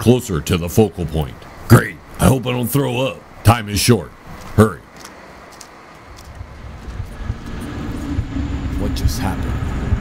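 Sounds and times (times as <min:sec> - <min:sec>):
low steady hum: 0:00.0 - 0:10.0
deep rumble: 0:06.3 - 0:10.0.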